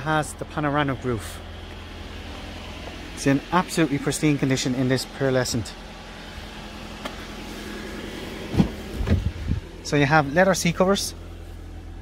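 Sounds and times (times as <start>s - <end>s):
car door clunks and knocks: 8.4s - 9.5s.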